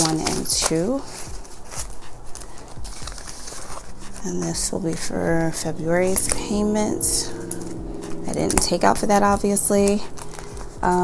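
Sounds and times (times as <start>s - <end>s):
plastic pouches handled: 0.0s - 5.6s, 9.9s - 10.8s
paper banknotes rustling: 0.0s - 6.5s, 8.4s - 11.0s.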